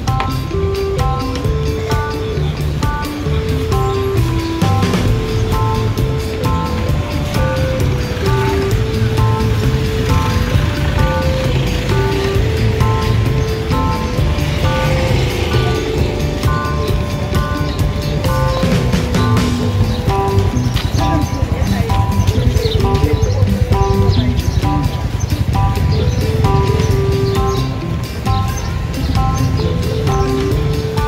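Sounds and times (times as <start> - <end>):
steady low beat: 0.0 - 31.0.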